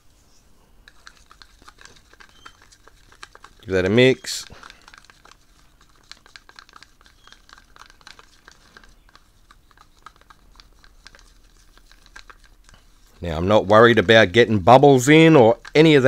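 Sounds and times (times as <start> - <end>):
stick scraping paint in cup: 0.8 - 16.0.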